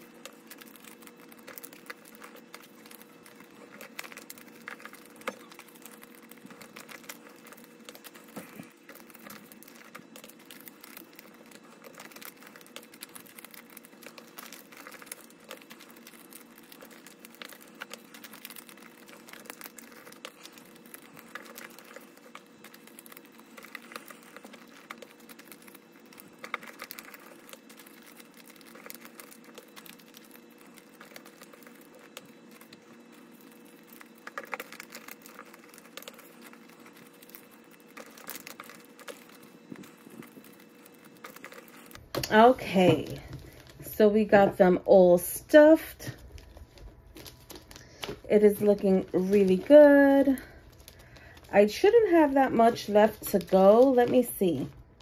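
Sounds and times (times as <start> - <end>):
banknotes rustling and crinkling: 0.0 - 55.0
faint steady hum: 0.0 - 55.0.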